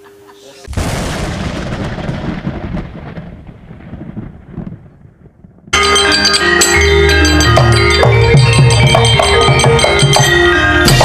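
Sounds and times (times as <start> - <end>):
deep thunder-like boom: 0.7 - 5.8
gamelan music: 5.8 - 11.0.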